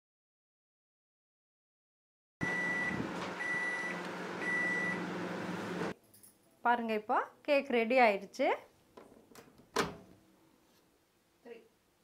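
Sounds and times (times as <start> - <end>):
microwave fan hum: 2.4 - 5.9.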